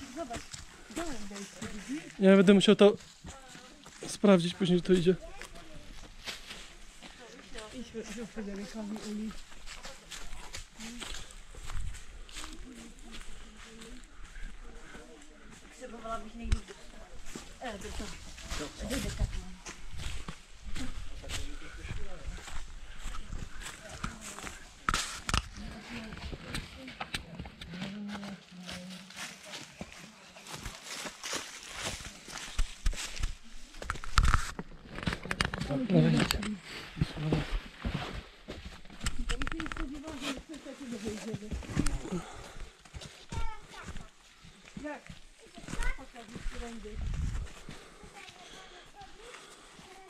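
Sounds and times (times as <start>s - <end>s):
people talking: 0.0s - 2.1s, 7.2s - 10.1s, 14.6s - 19.6s, 25.6s - 30.4s, 39.1s - 42.4s, 44.8s - 47.4s, 48.0s - 50.0s
footsteps on dry leaves: 0.0s - 26.1s, 28.1s - 50.0s.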